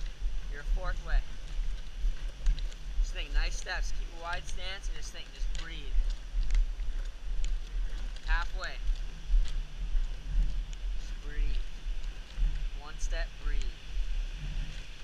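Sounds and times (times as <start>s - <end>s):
dummy dragged over asphalt: 0.0s - 15.0s
wind buffeting microphone: 0.0s - 15.0s.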